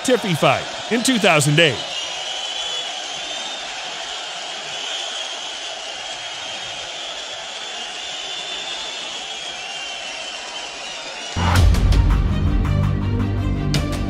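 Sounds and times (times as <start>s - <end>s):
arena crowd noise: 0.0s - 11.4s.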